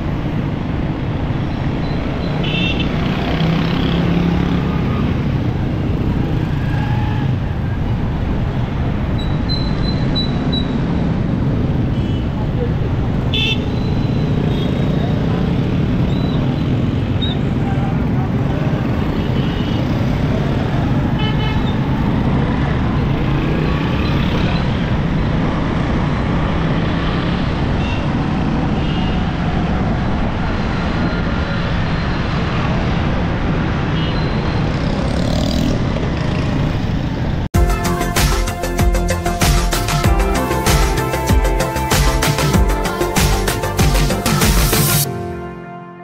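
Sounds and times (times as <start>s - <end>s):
motorcycle engines rumbling: 0.0s - 45.1s
short horn toots: 45.0s - 46.0s.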